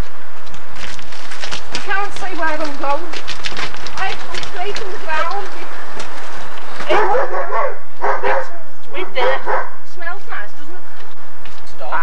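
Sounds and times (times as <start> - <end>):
people's voices: 1.8 - 12.0
dog barking: 6.8 - 9.8.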